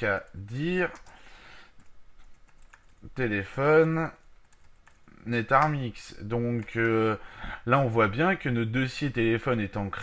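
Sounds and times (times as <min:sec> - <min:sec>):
computer keyboard typing clicks: 0:00.9 - 0:01.2, 0:01.8 - 0:03.0, 0:03.8 - 0:05.0.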